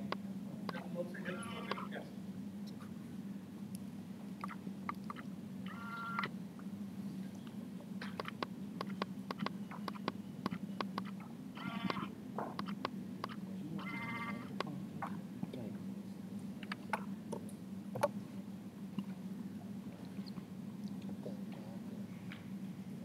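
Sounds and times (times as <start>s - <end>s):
steady low hum: 0.0s - 23.0s
scattered clicks and taps: 8.2s - 11.1s.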